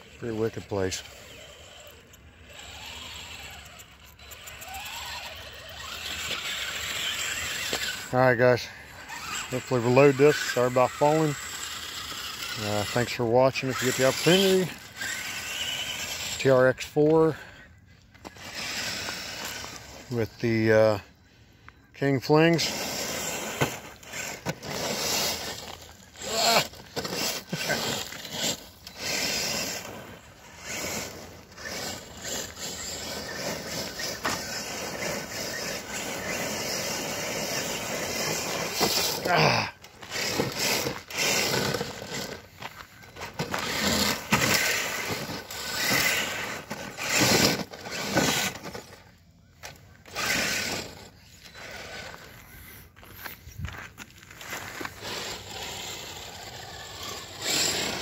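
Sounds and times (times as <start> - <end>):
tyres scrabbling on gravel: 0.0 - 17.5, 18.2 - 21.0, 22.0 - 58.0
electric motor and gears whining: 0.0 - 21.0, 21.9 - 58.0.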